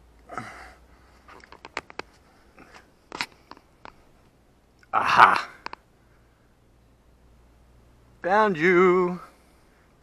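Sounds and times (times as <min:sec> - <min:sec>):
rustle: 0:00.0 - 0:10.0.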